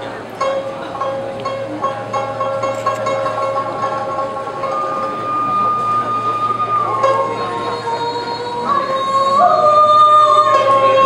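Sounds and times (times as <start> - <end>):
faint plucked strings: 0.0 - 11.0.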